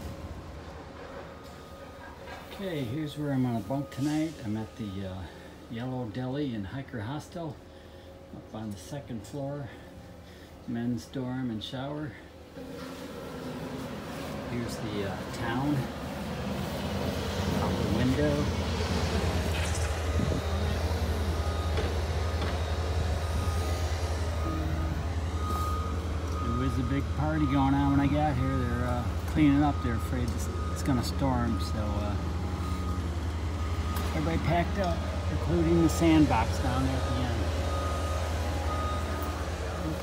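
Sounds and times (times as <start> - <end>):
reversing alarm beeps: 0.0 - 6.4, 17.5 - 40.0
rumble of vehicle engines: 0.0 - 40.0.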